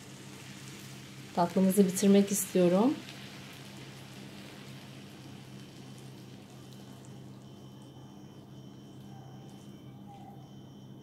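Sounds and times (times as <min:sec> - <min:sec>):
pastry sizzling and crackling: 0:00.0 - 0:10.1
low steady hum: 0:00.0 - 0:11.0.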